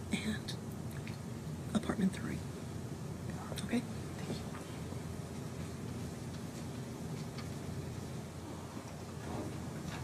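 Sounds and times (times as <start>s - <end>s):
hushed whispering voices: 0.0s - 0.6s
low room hum: 0.0s - 10.0s.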